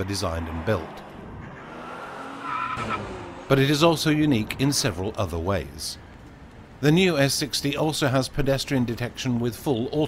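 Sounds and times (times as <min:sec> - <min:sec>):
car road noise: 0:00.0 - 0:10.0.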